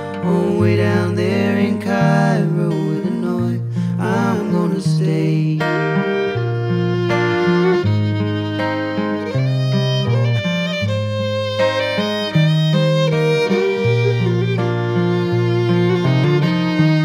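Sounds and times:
acoustic guitar accompaniment: 0:00.0 - 0:17.0
fiddle playing a melody: 0:00.0 - 0:17.0.

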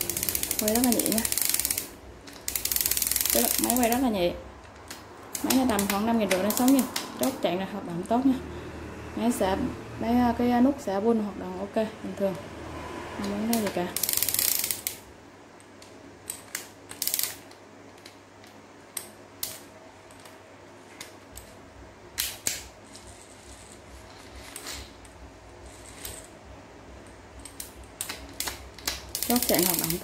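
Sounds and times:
fishing reel clicks and taps: 0:00.0 - 0:01.9, 0:02.5 - 0:04.0, 0:13.5 - 0:15.0, 0:27.5 - 0:30.0
fishing reel whirring: 0:00.0 - 0:04.1, 0:14.0 - 0:14.9, 0:29.2 - 0:30.0.

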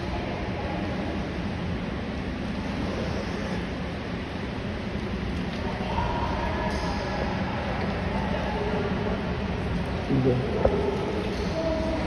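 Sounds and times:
pool water: 0:00.0 - 0:12.0.

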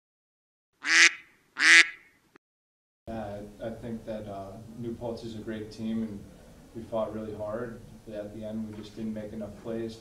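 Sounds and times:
duck quacking: 0:00.8 - 0:02.2.

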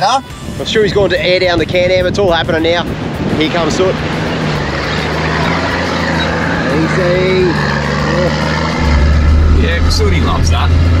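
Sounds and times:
vehicle engine under load: 0:04.0 - 0:11.0.

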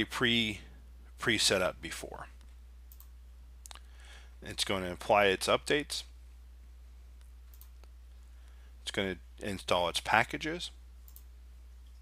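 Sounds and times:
low steady hum: 0:00.0 - 0:12.0
faint clicks: 0:02.4 - 0:03.9, 0:07.2 - 0:08.6, 0:11.1 - 0:12.0.

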